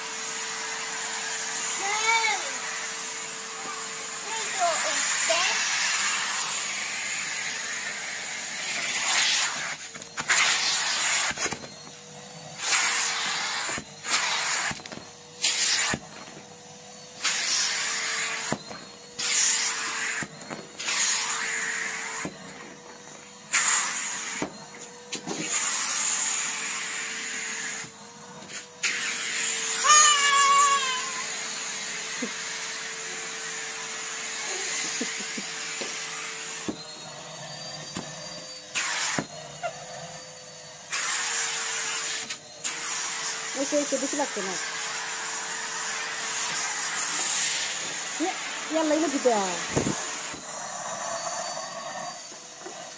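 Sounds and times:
vacuum cleaner running: 0.0s - 52.9s
child squealing: 1.8s - 2.7s, 29.7s - 31.4s.

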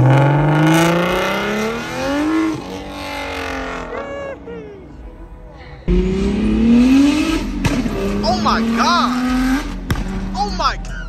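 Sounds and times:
car engine accelerating: 0.0s - 11.0s
people whooping: 2.6s - 5.0s.

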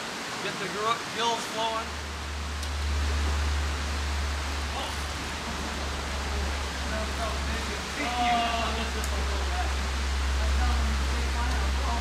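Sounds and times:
stream rushing over rocks: 0.0s - 12.0s
steady low hum: 1.7s - 12.0s.

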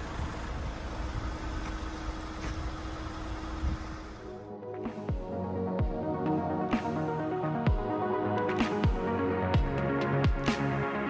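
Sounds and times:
excavator diesel engine rumble: 0.0s - 4.4s
electronic music with bass sweeps: 4.1s - 11.0s.

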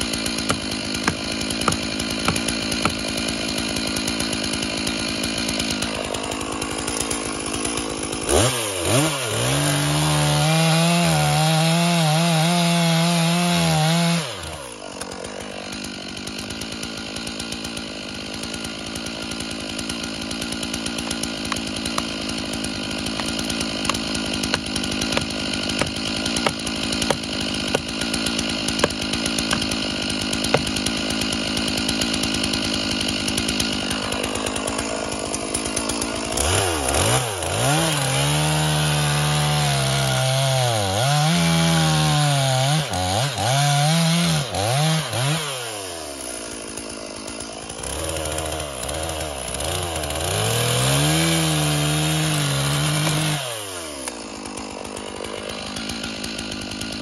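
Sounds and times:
chainsaw idling and revving: 0.0s - 57.0s.

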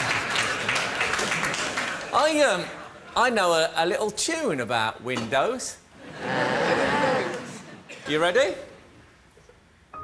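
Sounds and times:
audience applauding: 0.0s - 2.6s.

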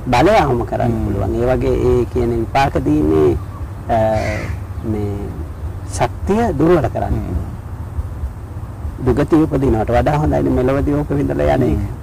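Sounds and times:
man speaking: 0.0s - 7.6s, 9.0s - 12.0s
crow cawing: 3.4s - 4.9s.

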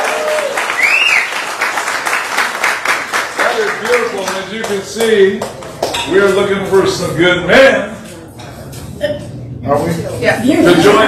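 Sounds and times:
dishes clinking: 5.8s - 6.4s.

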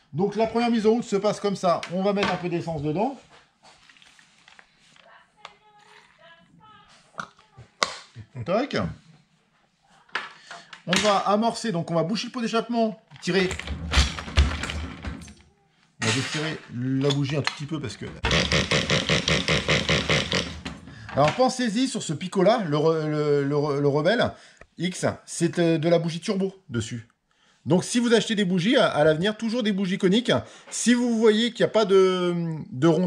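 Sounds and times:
quiet fumbling with plastic bottle: 2.2s - 7.8s.

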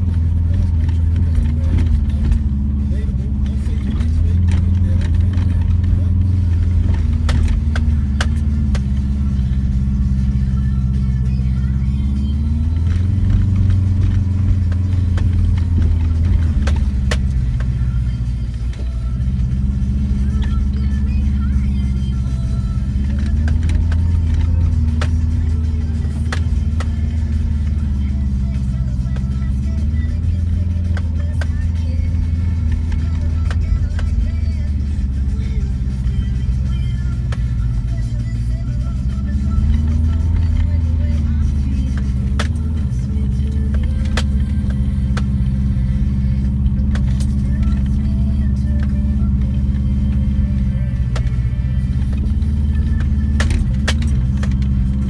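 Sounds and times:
car knocks and rattles: 0.0s - 10.1s, 12.4s - 37.9s, 39.0s - 50.4s, 51.0s - 55.0s
car engine pulling uphill: 0.0s - 55.0s.

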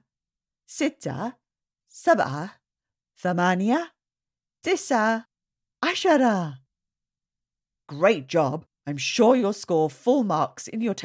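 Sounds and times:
woman speaking: 0.7s - 1.4s, 2.0s - 2.6s, 3.2s - 4.0s, 4.6s - 6.7s, 7.9s - 11.0s.

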